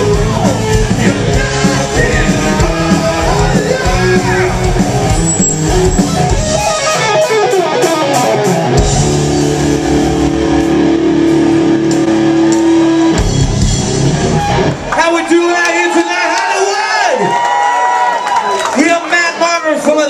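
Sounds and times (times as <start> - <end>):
hard rock band playing: 0.0 - 15.0.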